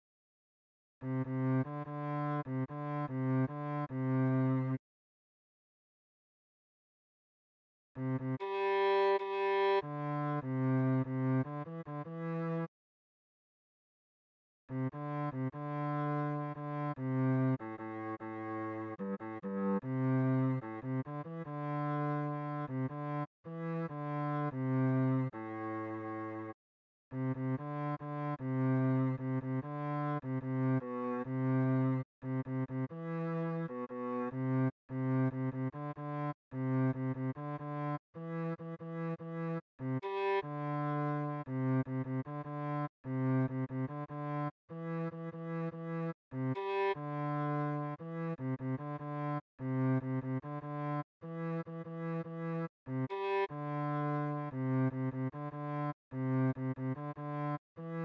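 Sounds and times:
low cello melody: 1.0 - 4.8, 8.0 - 12.7, 14.7 - 57.6.

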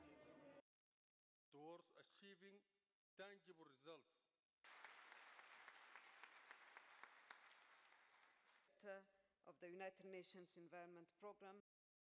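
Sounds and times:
faint audience applause: 4.7 - 8.8.

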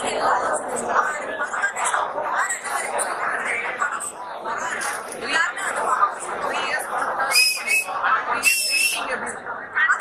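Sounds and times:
crowd chatter: 0.0 - 10.0
shrill whistles: 7.3 - 9.0.

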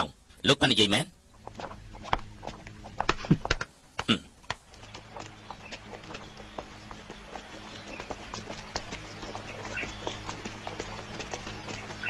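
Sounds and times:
footsteps on stone steps: 1.4 - 12.0.

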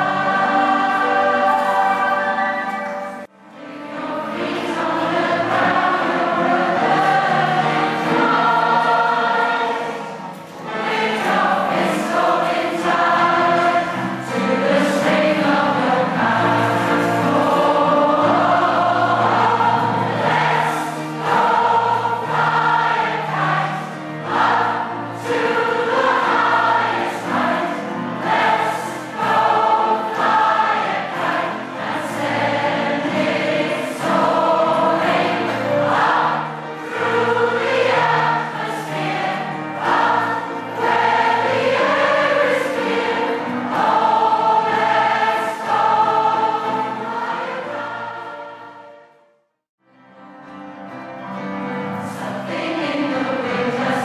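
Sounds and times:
choir singing: 0.0 - 49.4, 51.2 - 54.0.

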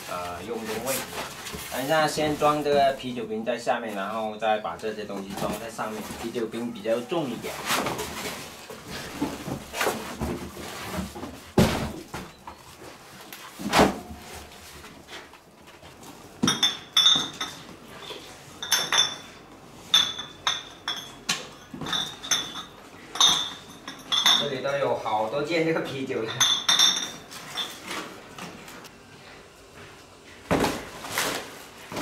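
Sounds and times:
glass bottles clinking: 16.4 - 24.9, 26.2 - 28.1.

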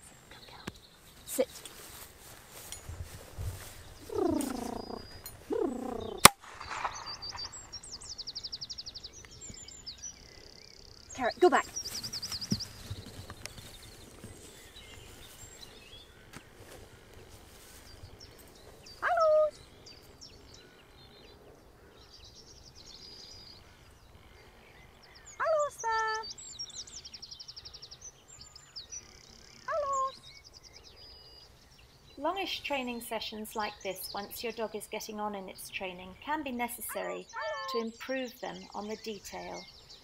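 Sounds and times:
birds singing and trilling: 0.0 - 40.0
short pitched bird calls: 4.0 - 8.8.

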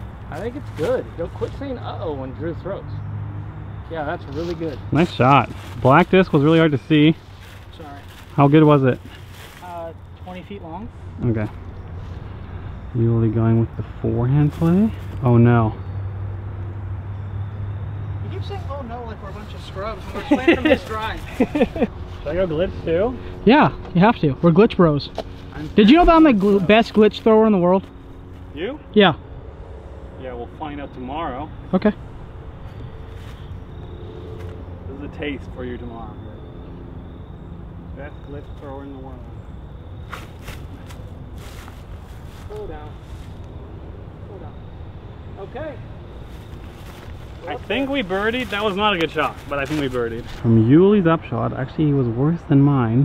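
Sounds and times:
footsteps crunching dry leaves: 0.4 - 1.6, 4.2 - 10.3, 14.4 - 15.2, 18.6 - 22.3, 25.2 - 28.5, 32.6 - 34.6, 40.0 - 43.4, 46.1 - 50.5.

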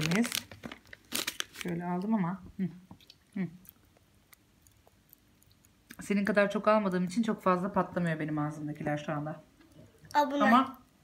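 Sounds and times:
popping candy crackling in mouth: 0.0 - 2.2.

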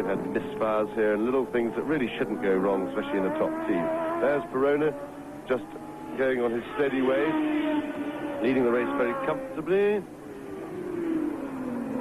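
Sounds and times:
racing car engine passing by: 0.0 - 12.0.

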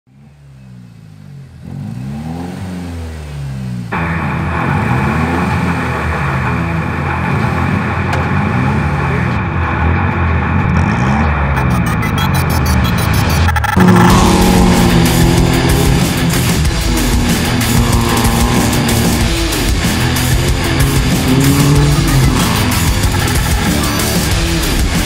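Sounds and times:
car engine revving: 0.1 - 25.0
heavy rock music: 3.9 - 25.0
intro music build-up: 3.9 - 25.0.

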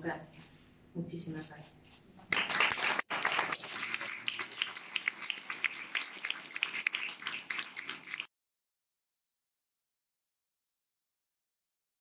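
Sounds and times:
audience applauding: 2.3 - 8.3.

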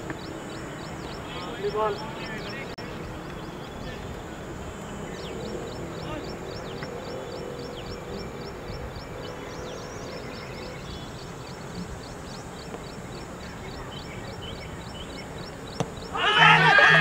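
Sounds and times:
bird chirping quickly: 4.9 - 16.6.

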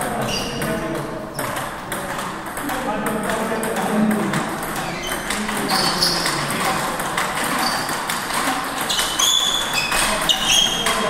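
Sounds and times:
table tennis balls clicking: 0.0 - 11.0.

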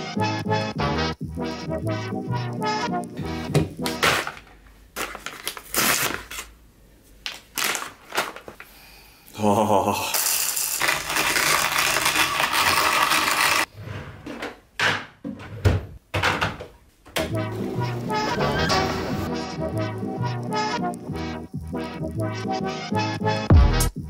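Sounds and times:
background music with a beat: 0.0 - 3.9, 19.2 - 24.0
coffee beans in hand grinder: 10.1 - 13.7.

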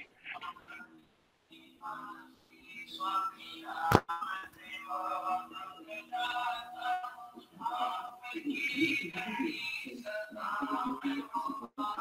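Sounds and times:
music with singing voice: 0.3 - 12.0.

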